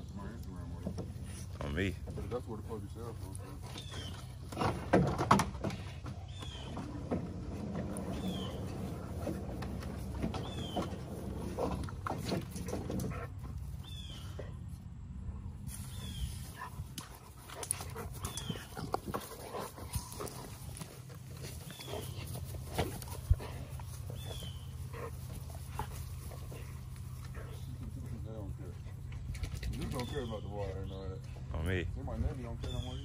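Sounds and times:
scuffling on grass: 15.7 - 28.8
dogs growling: 16.6 - 29.6.

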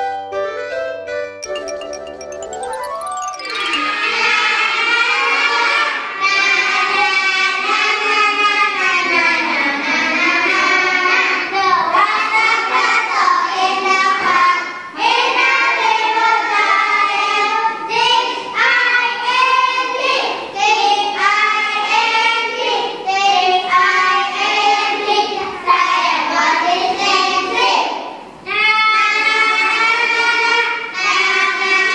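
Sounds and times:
children singing: 3.1 - 31.9.

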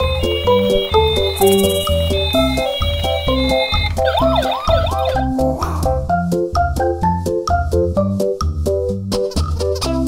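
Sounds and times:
electronic siren sweeping: 0.0 - 5.4.

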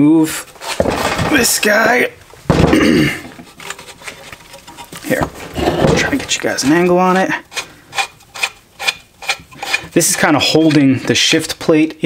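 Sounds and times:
man clearing his throat: 2.7 - 3.3.

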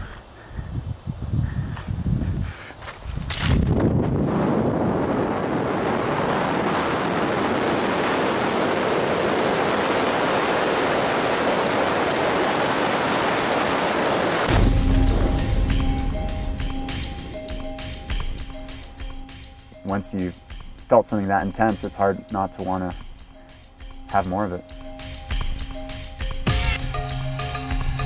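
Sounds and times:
wind rushing over microphone: 0.0 - 18.7
music: 14.5 - 28.0.

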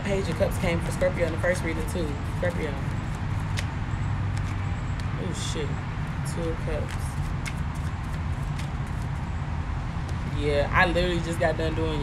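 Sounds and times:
low outdoor rumble: 0.0 - 12.0
cards being shuffled: 0.2 - 3.7, 4.3 - 5.1, 6.8 - 9.2.

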